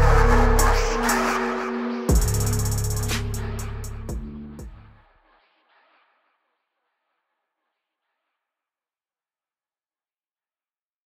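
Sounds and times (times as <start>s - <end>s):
deep bass: 0.0s - 5.0s
hi-hat ticks: 2.1s - 4.8s.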